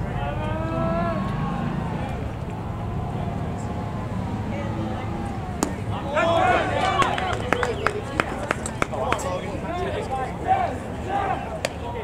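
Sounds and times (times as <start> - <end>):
open-air background noise: 0.0 - 12.0.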